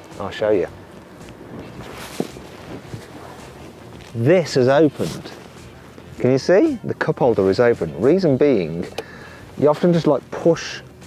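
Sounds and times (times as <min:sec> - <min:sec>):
low rustling movement: 0:00.0 - 0:10.6.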